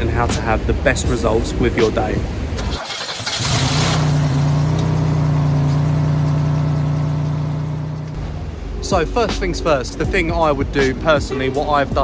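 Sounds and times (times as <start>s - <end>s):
vehicle engine running: 2.7s - 11.1s.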